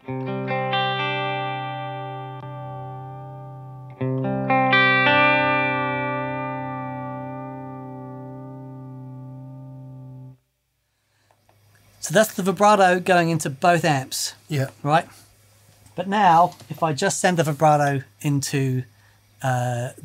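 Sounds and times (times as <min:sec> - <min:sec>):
electric guitar chords with vibrato: 0:00.0 - 0:10.4.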